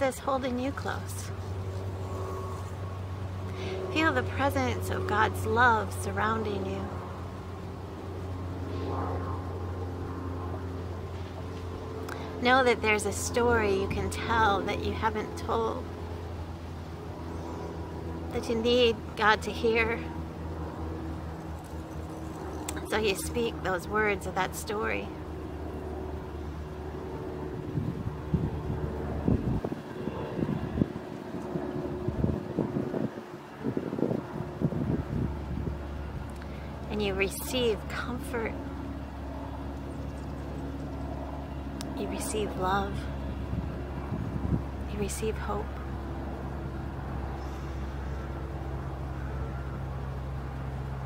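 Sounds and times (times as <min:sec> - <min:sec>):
faint passing vehicle: 0:00.0 - 0:51.0
low steady background rumble: 0:00.0 - 0:51.0
steady low hum: 0:00.0 - 0:51.0
wind gusting on microphone: 0:17.0 - 0:49.0.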